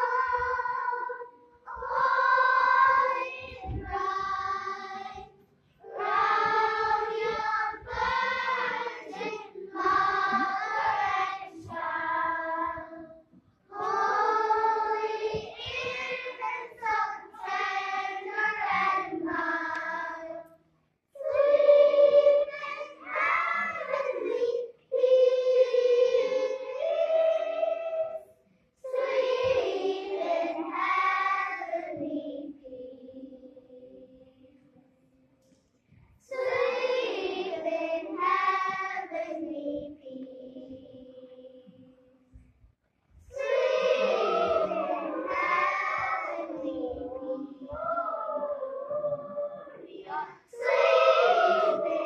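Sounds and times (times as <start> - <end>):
children's choir singing: 0.0 - 35.0, 36.2 - 42.4, 43.2 - 52.0.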